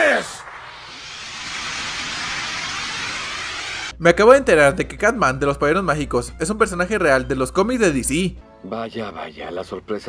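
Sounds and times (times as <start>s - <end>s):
steady rushing noise: 0.0s - 4.0s.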